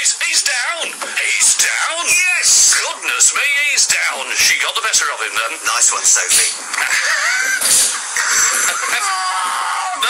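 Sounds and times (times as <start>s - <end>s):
excited yelling and shrieking: 6.9s - 10.0s.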